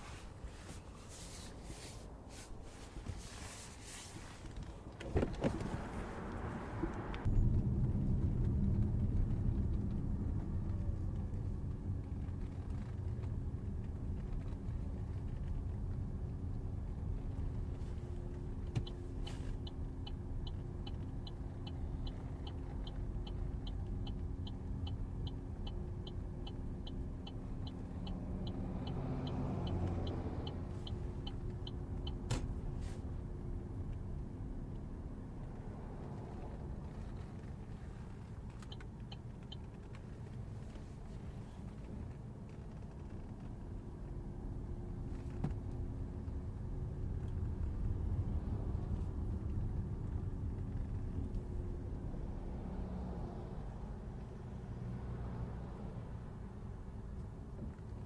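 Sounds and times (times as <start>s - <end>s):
car driving low rumble: 0.0s - 58.0s
quick ticking of turn signal: 18.2s - 32.8s, 36.1s - 41.1s.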